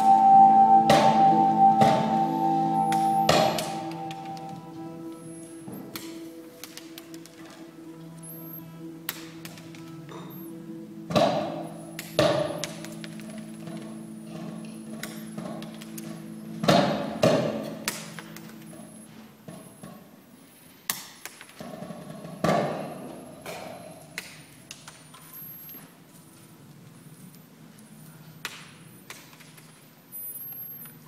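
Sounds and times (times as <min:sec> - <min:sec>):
low hum of held tones: 0:00.0 - 0:06.7, 0:07.6 - 0:19.2.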